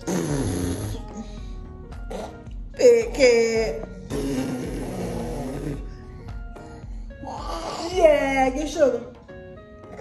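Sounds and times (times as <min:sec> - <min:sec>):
woman's low throaty vocal noise: 0:00.0 - 0:02.5, 0:03.9 - 0:07.9
background music with held tones: 0:00.0 - 0:10.0.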